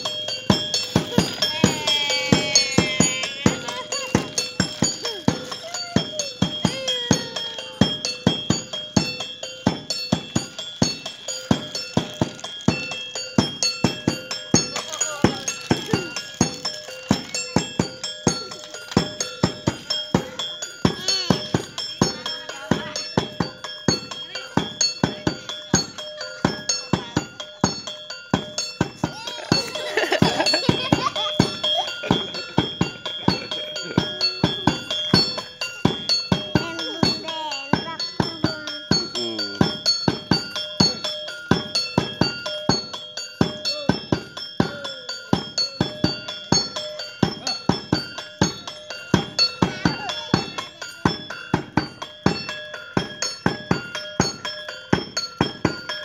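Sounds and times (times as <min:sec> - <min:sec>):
hand drum beating: 0:00.0 - 0:56.0
ringing metal percussion: 0:00.0 - 0:56.0.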